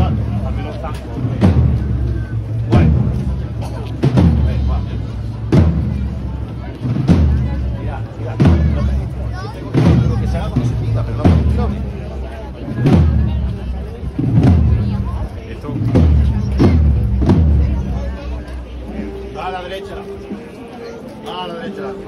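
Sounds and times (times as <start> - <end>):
bass drum strokes: 0.0 - 19.0.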